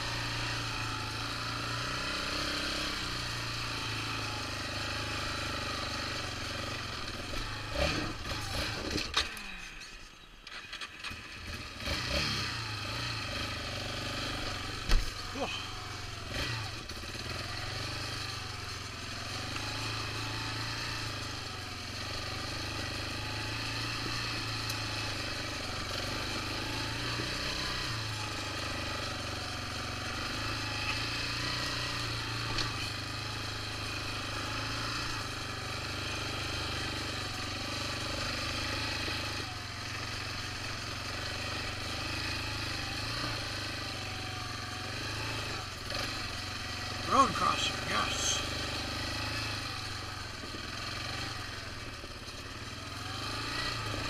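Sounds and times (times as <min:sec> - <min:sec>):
quad bike engine running: 0:00.0 - 0:54.0.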